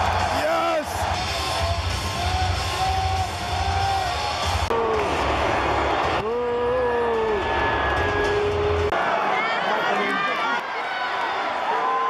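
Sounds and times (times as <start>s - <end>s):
crowd yelling and cheering: 0.0s - 12.0s
bass-heavy entrance music: 0.9s - 8.9s.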